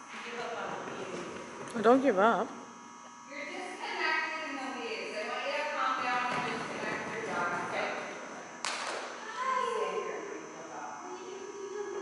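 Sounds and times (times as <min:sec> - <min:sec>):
indistinct voices talking: 0:03.3 - 0:12.0.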